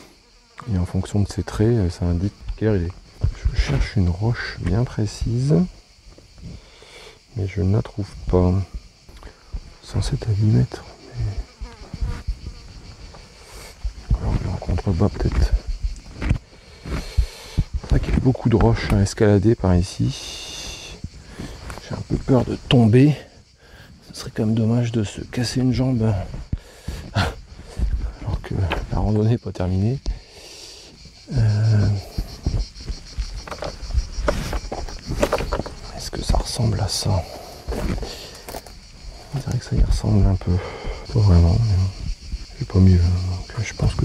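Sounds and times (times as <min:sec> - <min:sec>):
footsteps scrambling over rocks: 0:02.4 - 0:04.8, 0:11.8 - 0:18.8, 0:21.0 - 0:22.7, 0:31.8 - 0:36.0, 0:37.5 - 0:38.8
faint hiss: 0:03.5 - 0:15.8, 0:19.6 - 0:28.9, 0:29.9 - 0:32.4.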